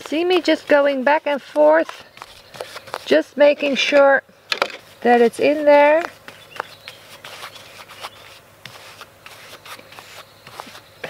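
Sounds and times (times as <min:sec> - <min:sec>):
paintbrush scrubbing scratchy rustle: 0:00.0 - 0:03.9, 0:04.8 - 0:11.0.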